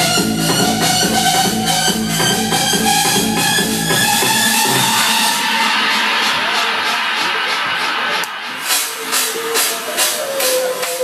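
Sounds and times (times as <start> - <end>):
house music: 0.0 - 11.0.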